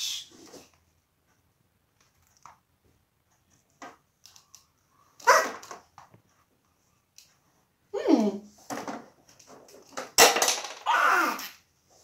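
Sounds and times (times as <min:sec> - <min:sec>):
loud vocal cry: 0:10.8 - 0:11.5.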